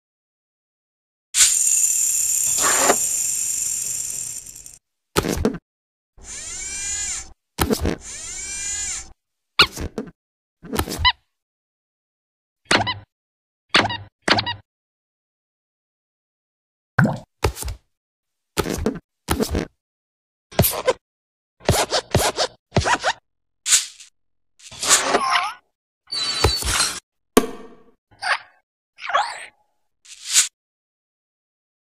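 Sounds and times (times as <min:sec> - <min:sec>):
mechanical whirring sweeps: 0:01.4 - 0:04.8.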